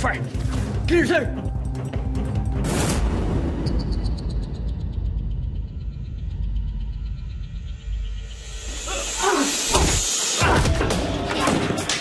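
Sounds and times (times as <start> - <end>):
deep rumbling drone: 4.2 - 9.2.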